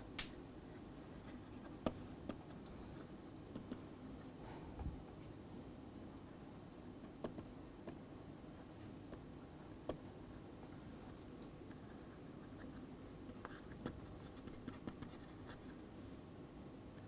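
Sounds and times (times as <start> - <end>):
low room noise: 0.0 - 17.0.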